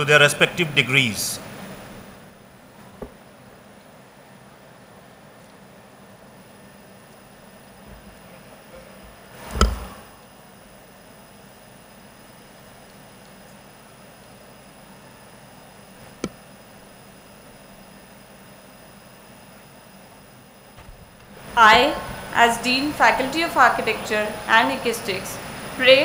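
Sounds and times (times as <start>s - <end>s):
microphone hiss: 0.0s - 26.0s.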